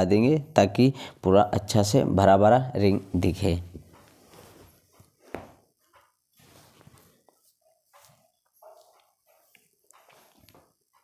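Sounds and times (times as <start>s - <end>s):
faint rustling and handling: 2.8s - 11.0s.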